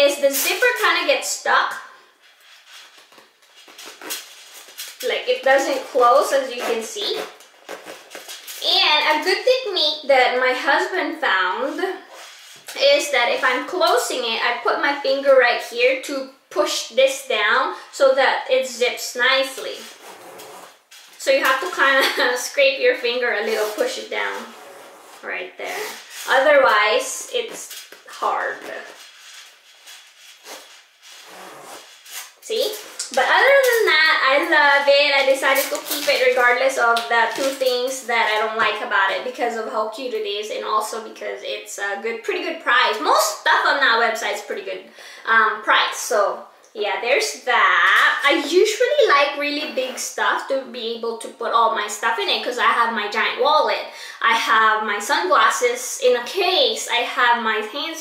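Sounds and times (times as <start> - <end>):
zipper rasping: 2.2 - 8.7, 19.7 - 22.2, 23.4 - 26.4, 27.2 - 33.0, 49.6 - 50.1.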